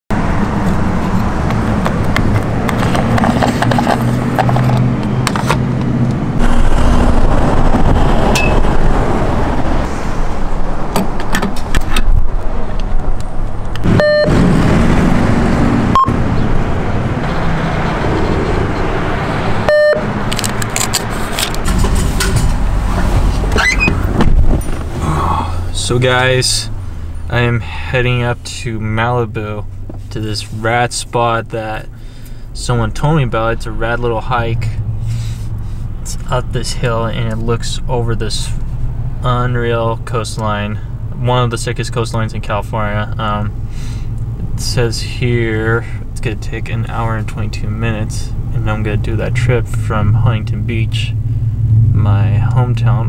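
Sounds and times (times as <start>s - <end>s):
traffic noise: 0.1s - 53.0s
vehicle engine running: 0.2s - 10.8s, 12.6s - 41.2s.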